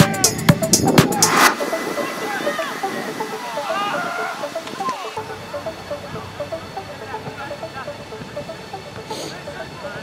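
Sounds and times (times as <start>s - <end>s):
distant players shouting: 0.0s - 9.8s
music with sharp beat: 0.0s - 10.0s.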